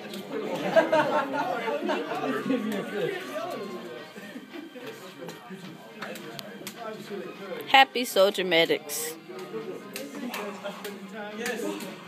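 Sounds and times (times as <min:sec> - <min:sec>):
people laughing: 0:00.2 - 0:05.3, 0:10.0 - 0:12.0.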